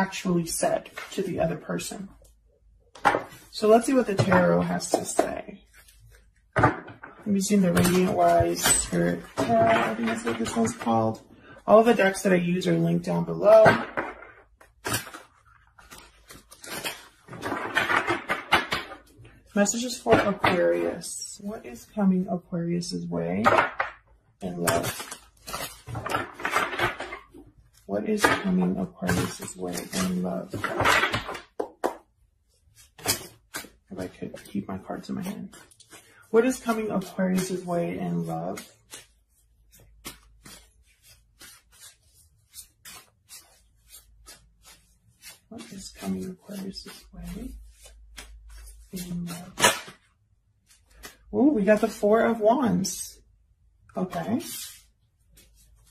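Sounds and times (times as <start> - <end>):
cards shuffling clicks and rustles: 14.0 - 19.2, 24.5 - 28.5, 29.1 - 51.3, 54.1 - 55.9.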